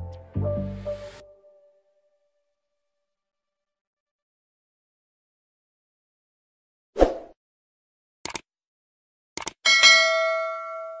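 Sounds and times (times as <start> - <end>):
double mouse click: 8.2 - 8.4, 9.4 - 9.6.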